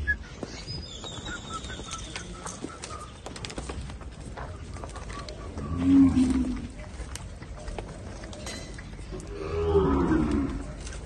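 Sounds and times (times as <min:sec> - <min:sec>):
cows mooing: 0:05.6 - 0:06.7, 0:09.2 - 0:10.8.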